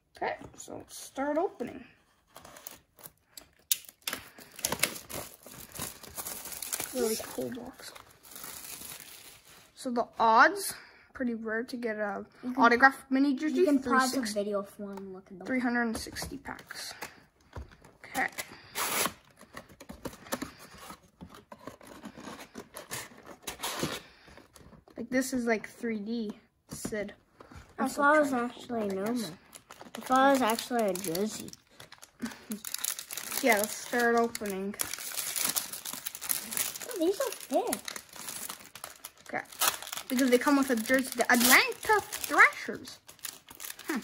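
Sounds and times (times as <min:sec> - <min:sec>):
cardboard and foil crackling: 0:02.2 - 0:09.8, 0:27.4 - 0:44.0
wrapped packs rustling: 0:02.5 - 0:09.8, 0:27.4 - 0:44.0.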